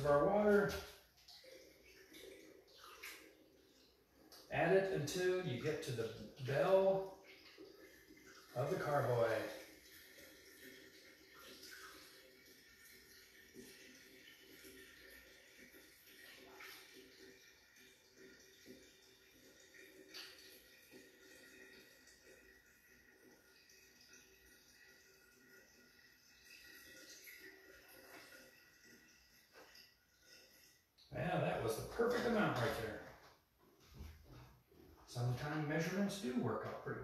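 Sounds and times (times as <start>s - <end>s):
water trickling through funnel: 0.0s - 33.2s.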